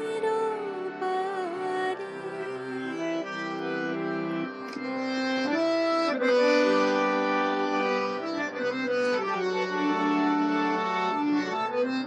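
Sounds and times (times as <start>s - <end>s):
harmonium playing: 0.0s - 12.0s.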